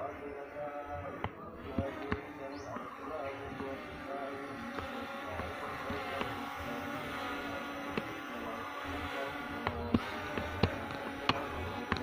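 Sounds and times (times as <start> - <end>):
drone propellers buzzing: 0.0 - 12.0.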